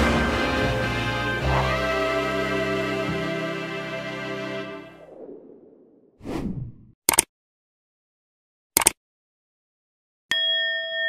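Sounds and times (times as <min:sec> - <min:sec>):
sharp click effect: 0:07.1 - 0:07.3, 0:08.8 - 0:09.0.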